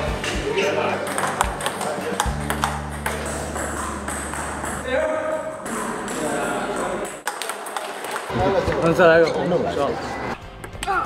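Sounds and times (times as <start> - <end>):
table tennis ball clicks: 1.1 - 4.8.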